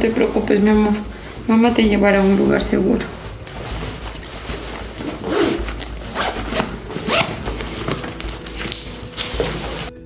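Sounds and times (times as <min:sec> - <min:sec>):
backpack zipper being pulled: 0:03.1 - 0:09.9.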